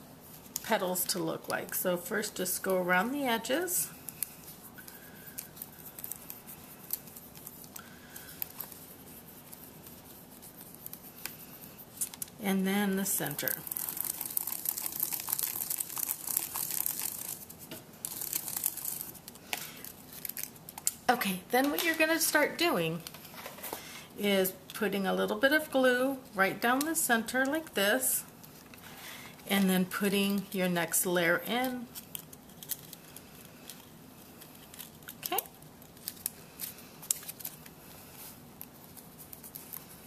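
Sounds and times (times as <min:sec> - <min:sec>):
paper clicks and rustles: 0:31.6 - 0:40.0.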